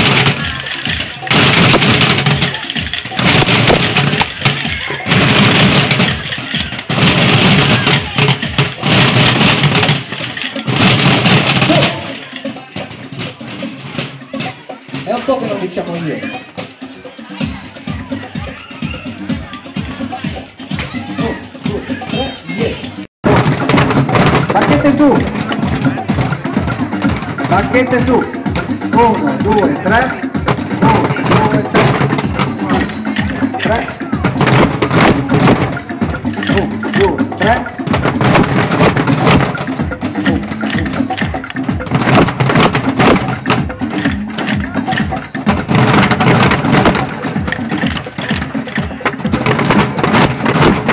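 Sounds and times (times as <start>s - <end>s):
children beating drums: 0.0s - 50.9s.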